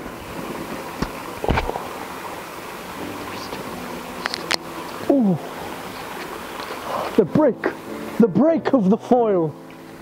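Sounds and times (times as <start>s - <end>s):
screw cap twisted open: 4.2s - 4.6s
cap seal crackling: 4.2s - 5.0s.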